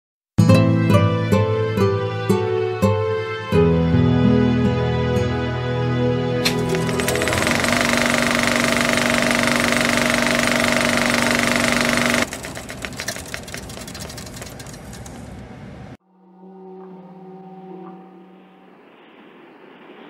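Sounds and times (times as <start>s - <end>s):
rapid mechanical clatter: 6.4s - 15.5s.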